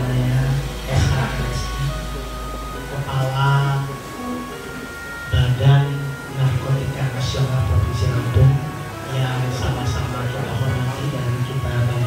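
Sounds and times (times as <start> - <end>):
man's voice through loudspeaker: 0.0 - 2.1, 2.8 - 4.0, 5.3 - 12.0.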